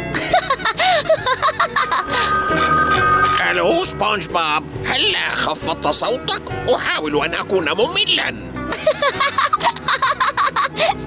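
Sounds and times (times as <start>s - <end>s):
telephone ringing: 1.6s - 4.0s
cartoon character laughing: 8.8s - 11.0s.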